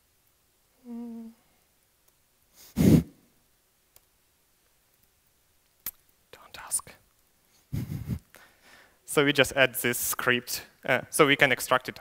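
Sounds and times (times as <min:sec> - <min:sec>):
man whispering: 0:06.3 - 0:07.1.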